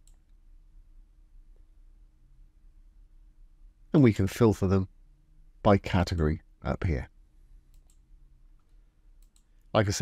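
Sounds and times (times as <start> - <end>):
faint mouse clicks: 0.0 - 0.4, 7.6 - 9.8.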